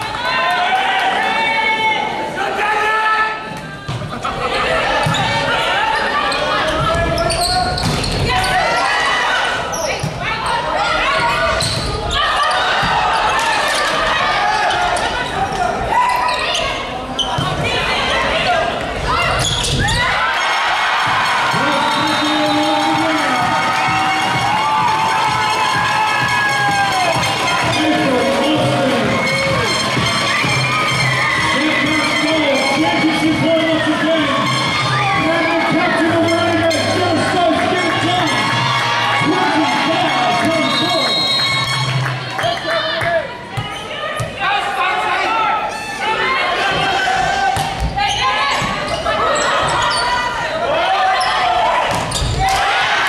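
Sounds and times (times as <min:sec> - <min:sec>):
crowd voices: 0:00.0 - 0:53.0
players shouting: 0:00.0 - 0:53.0
music over stadium pa: 0:20.6 - 0:42.4.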